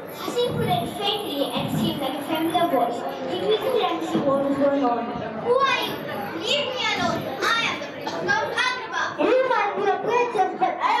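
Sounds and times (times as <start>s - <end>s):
child speaking through microphone: 0.0s - 11.0s.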